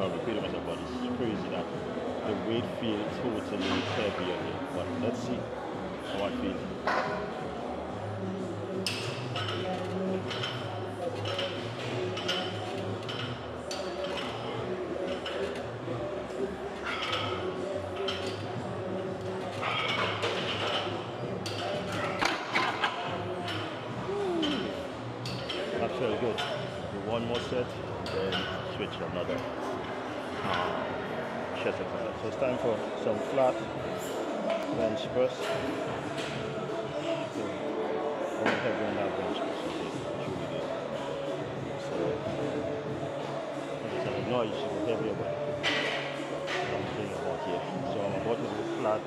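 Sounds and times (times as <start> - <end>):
music: 0.0 - 49.0.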